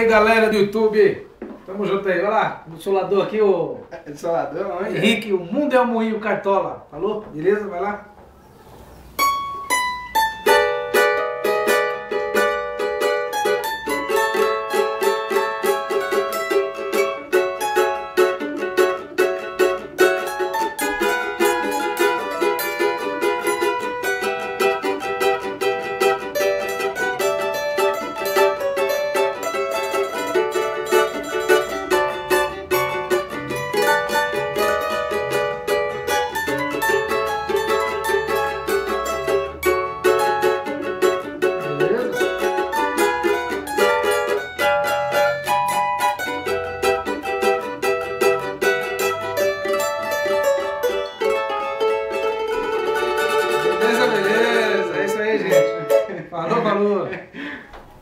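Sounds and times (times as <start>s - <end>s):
cavaquinho duet playing: 0.0s - 58.0s.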